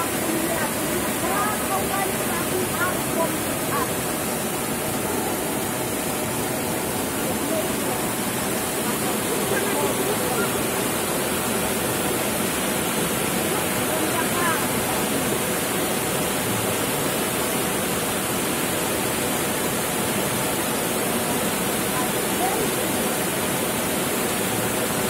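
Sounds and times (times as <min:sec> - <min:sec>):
floodwater rushing: 0:00.0 - 0:25.0.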